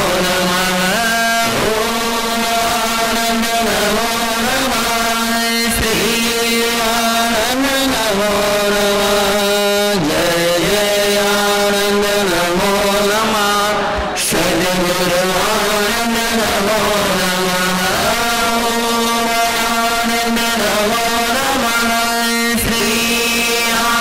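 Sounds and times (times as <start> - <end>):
man chanting: 0.0 - 24.0.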